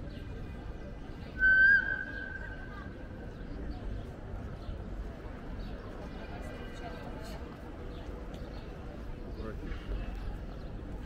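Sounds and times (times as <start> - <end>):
crowd hubbub: 0.0 - 11.0
high steady whistle: 1.4 - 2.2.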